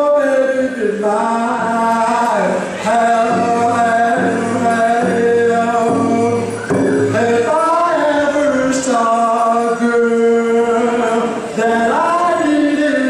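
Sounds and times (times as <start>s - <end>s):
man singing solo: 0.0s - 13.0s.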